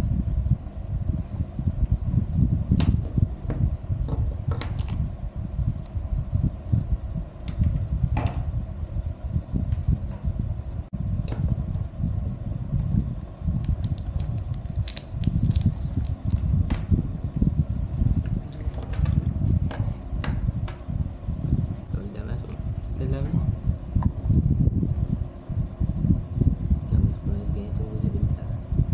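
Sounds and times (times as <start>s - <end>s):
low rumbling noise: 0.0s - 28.9s.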